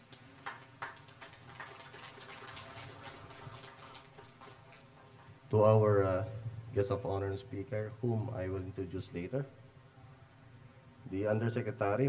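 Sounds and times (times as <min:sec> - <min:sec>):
faint applause: 0:00.0 - 0:05.4
low room noise: 0:00.0 - 0:12.0.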